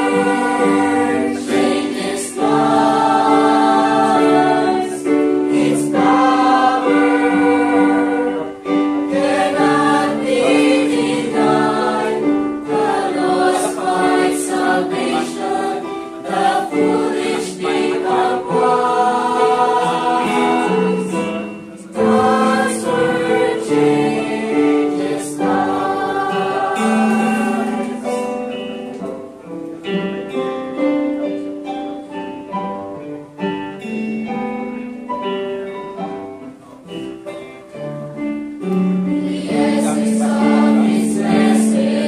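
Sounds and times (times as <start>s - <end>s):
church choir singing a hymn: 0.0s - 29.0s, 39.0s - 42.0s.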